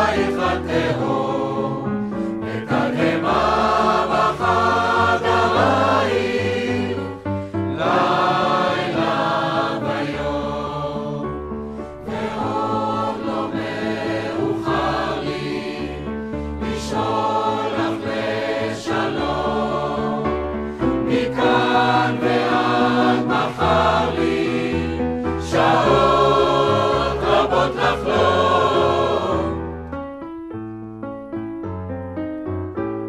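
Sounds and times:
choir singing: 0:00.0 - 0:29.7
piano accompaniment: 0:00.0 - 0:33.0.

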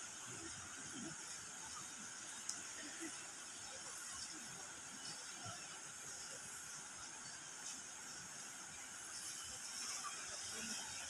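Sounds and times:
river running over rocks: 0:00.0 - 0:11.0.

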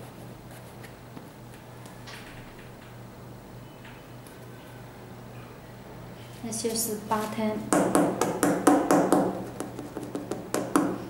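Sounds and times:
fingers tapping rubber sole: 0:07.8 - 0:11.0.

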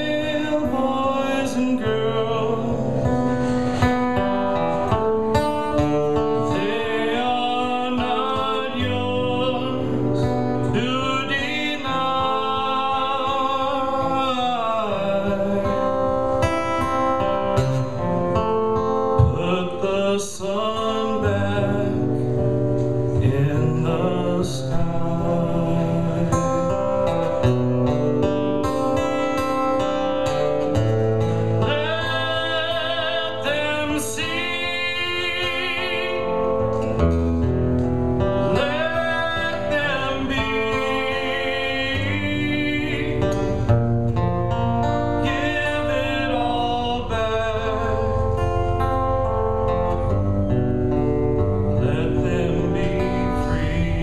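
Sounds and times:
man singing: 0:00.0 - 0:17.2, 0:18.8 - 0:22.4, 0:23.1 - 0:27.6, 0:31.6 - 0:37.1, 0:38.4 - 0:43.8, 0:44.8 - 0:50.3, 0:51.4 - 0:54.0
strummed acoustic guitar: 0:00.0 - 0:54.0.

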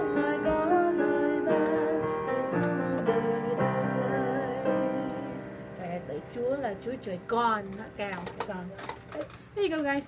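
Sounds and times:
held piano chord: 0:00.0 - 0:08.0
woman speaking: 0:05.8 - 0:10.0.

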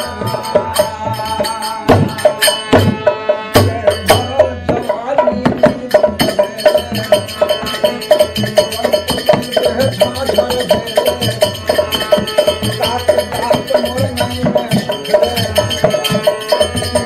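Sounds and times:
harmonium chords: 0:00.0 - 0:05.8
hand drum beat: 0:00.0 - 0:17.0
man singing: 0:00.0 - 0:17.0.

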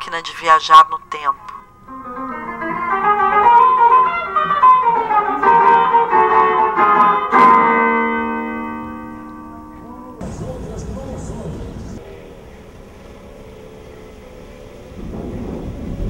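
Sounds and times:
cavaquinho plucked and strummed: 0:02.0 - 0:09.8.

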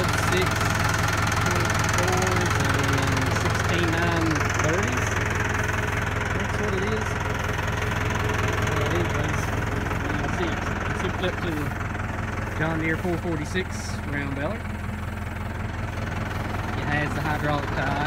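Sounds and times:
tractor diesel engine idling: 0:00.0 - 0:18.0.

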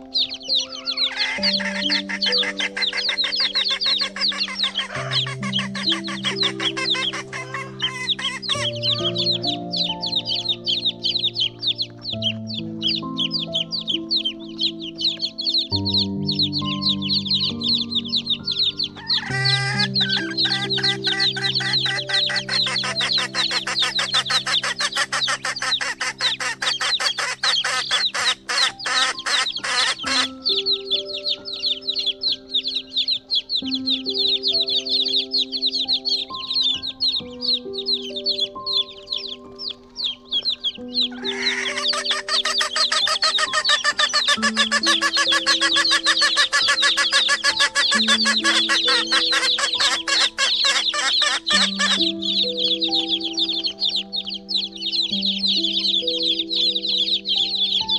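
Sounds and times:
background music of held notes: 0:00.0 - 0:57.9
flock of chickens clucking: 0:00.0 - 0:57.9.

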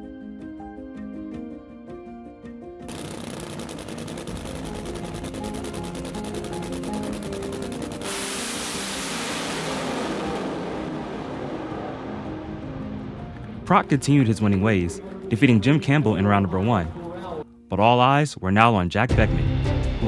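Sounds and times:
background music with held notes: 0:00.0 - 0:03.0, 0:04.2 - 0:20.0
supercharged engine crackling: 0:02.9 - 0:16.9.

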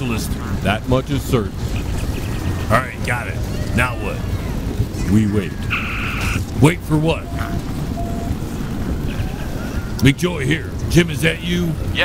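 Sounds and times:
low rumbling ambience: 0:00.0 - 0:12.0.

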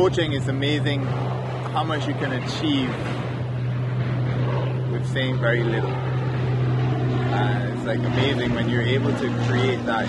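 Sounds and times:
steady low motor hum: 0:00.0 - 0:10.0.

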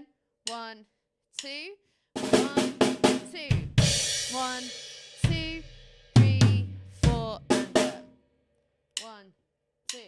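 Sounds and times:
acoustic drum kit playing: 0:02.2 - 0:08.1.

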